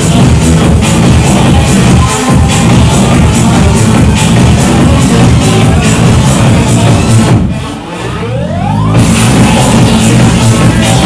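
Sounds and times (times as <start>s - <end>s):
bass line: 0.0s - 11.0s
trance music over sound system: 0.0s - 11.0s
synth tone sweeping upward: 7.8s - 10.1s.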